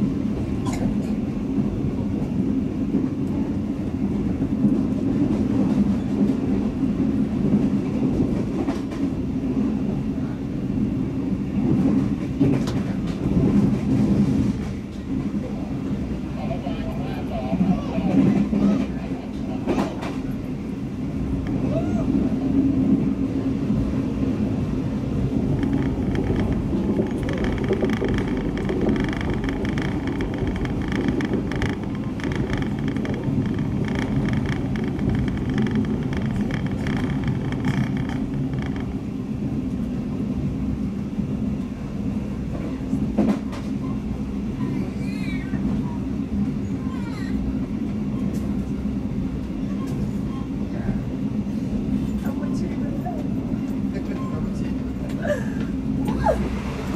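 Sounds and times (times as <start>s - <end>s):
rapid train clatter: 0.0s - 56.9s
train rumbling: 0.0s - 56.9s.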